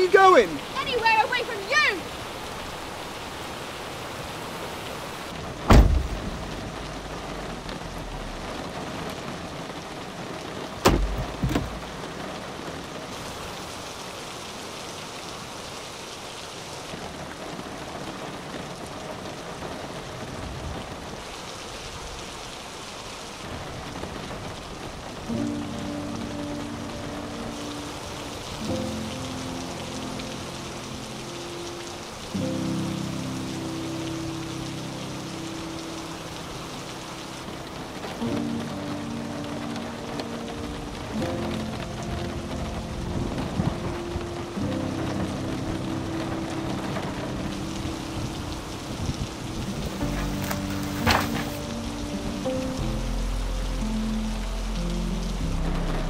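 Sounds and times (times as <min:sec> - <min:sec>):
heavy rain: 0:00.0 - 0:56.0
soft music: 0:25.2 - 0:56.0.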